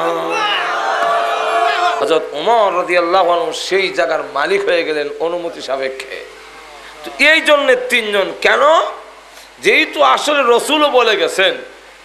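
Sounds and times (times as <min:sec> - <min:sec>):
man preaching half-sung: 0:02.0 - 0:11.8.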